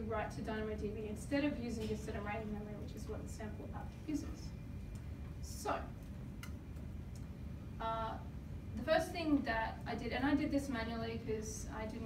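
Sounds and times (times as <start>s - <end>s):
quiet room hum: 0.0s - 12.0s.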